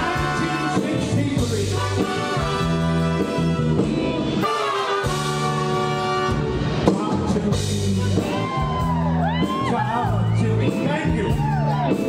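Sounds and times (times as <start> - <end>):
horn section playing chords: 0.0 - 8.4
bass and drums: 0.0 - 12.0.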